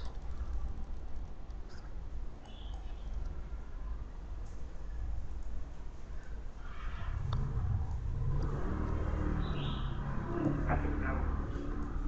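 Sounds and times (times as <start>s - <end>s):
low steady rumble: 4.2s - 12.0s.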